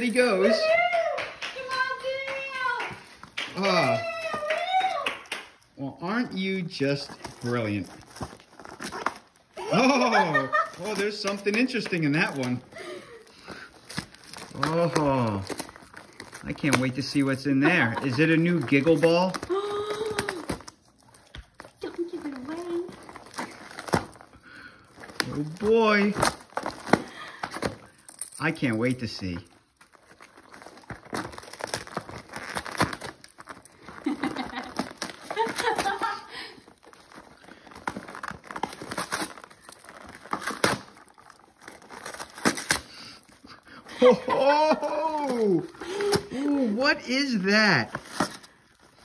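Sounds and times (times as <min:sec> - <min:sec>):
wrapping paper crinkling: 0:00.0 - 0:49.0
person speaking: 0:09.6 - 0:13.0, 0:16.4 - 0:20.5, 0:43.9 - 0:48.0.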